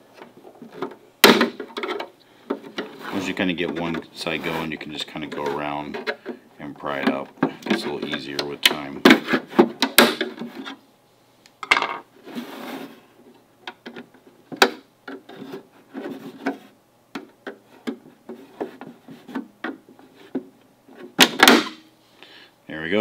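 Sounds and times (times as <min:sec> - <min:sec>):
plastic scraping and rubbing: 0:00.0 - 0:10.8, 0:12.2 - 0:13.1, 0:15.1 - 0:16.8, 0:17.4 - 0:21.3.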